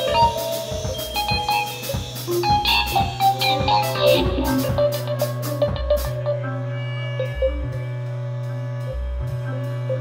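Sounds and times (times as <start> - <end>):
drum hits: 0.0 - 6.3
live band playing: 0.0 - 10.0.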